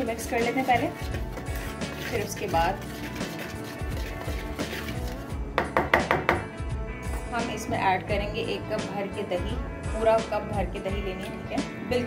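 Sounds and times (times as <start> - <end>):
whisk mixing flour in bowl: 0.0 - 5.8
whisk knocking against bowl: 0.0 - 6.5
background music: 0.0 - 12.0.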